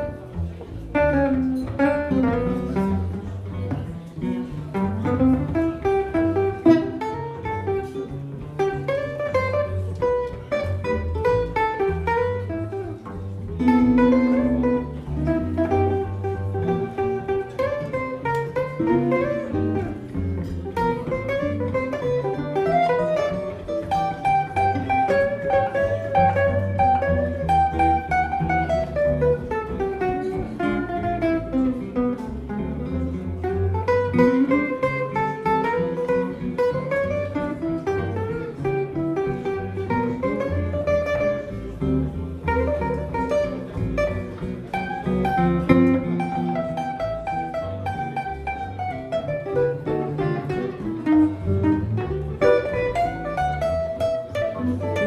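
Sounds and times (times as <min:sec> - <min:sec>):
double bass: 0:00.0 - 0:55.0
jazz guitars playing: 0:00.0 - 0:55.0.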